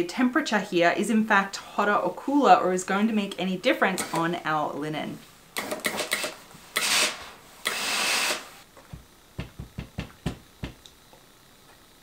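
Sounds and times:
iron knocking: 8.9 - 10.8.

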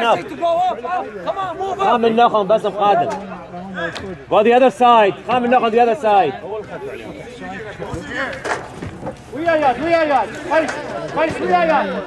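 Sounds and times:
people shouting: 0.0 - 2.2
men calling out: 0.0 - 4.8.

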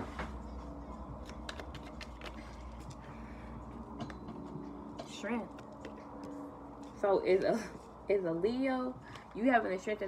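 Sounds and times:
cards being shuffled: 1.2 - 3.0.

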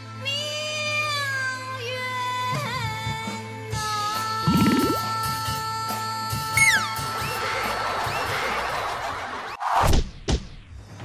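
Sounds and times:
background music: 0.0 - 9.5.

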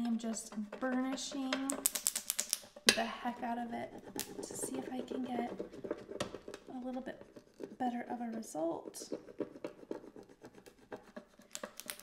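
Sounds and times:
scraper rubbing vinyl on glass: 0.0 - 1.8, 2.6 - 12.0.

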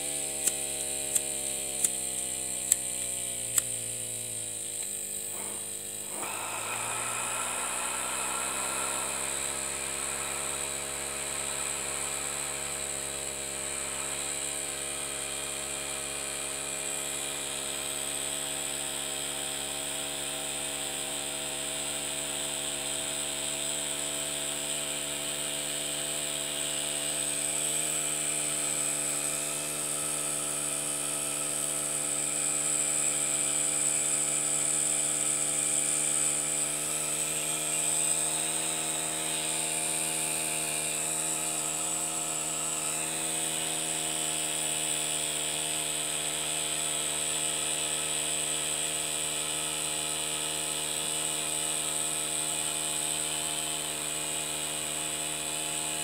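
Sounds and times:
small steam engine running: 0.0 - 56.0
gas burner hissing: 0.4 - 15.3.

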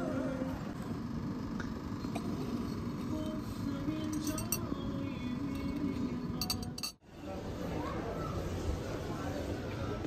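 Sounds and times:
murmur of busy room: 0.0 - 10.0
china cup and spoon clinking: 4.0 - 4.8, 5.5 - 7.0
background chatter: 5.2 - 10.0.

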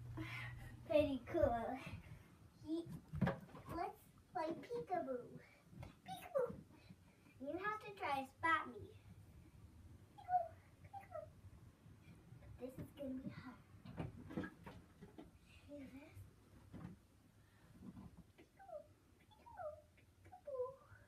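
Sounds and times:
child's soft wordless vocal sounds: 19.6 - 21.0.

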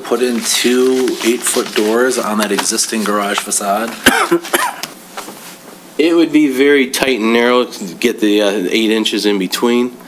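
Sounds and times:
person coughing: 4.0 - 4.9.

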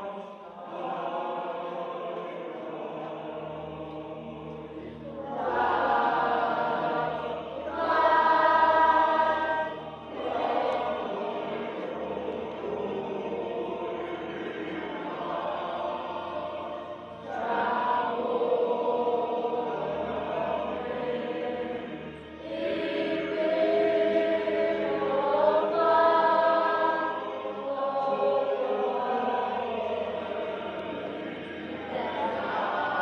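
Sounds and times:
children singing together: 0.0 - 33.0.

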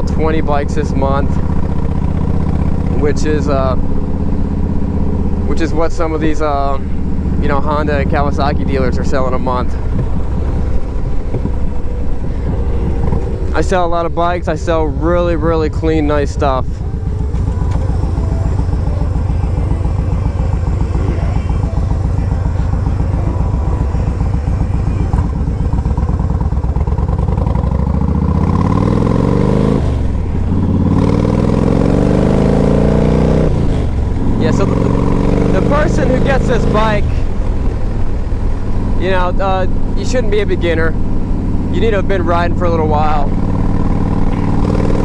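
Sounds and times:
motorcycle engine accelerating: 0.0 - 45.0.

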